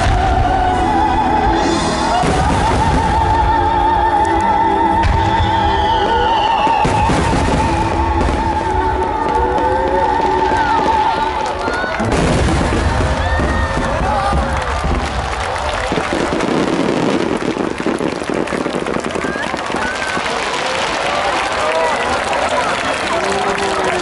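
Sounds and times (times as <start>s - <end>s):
crowd voices and cheers: 0.0s - 24.0s
fireworks crackle: 1.8s - 3.6s, 5.0s - 24.0s
fireworks booming: 2.0s - 3.6s, 5.0s - 21.6s.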